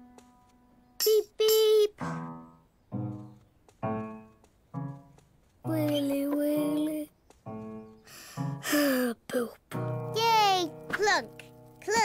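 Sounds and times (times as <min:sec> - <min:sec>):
low piano notes: 0:09.7 - 0:12.0.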